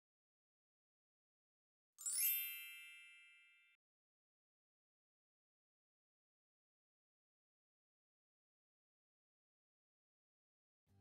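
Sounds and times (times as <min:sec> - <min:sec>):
bright shimmering chime: 0:02.0 - 0:03.8.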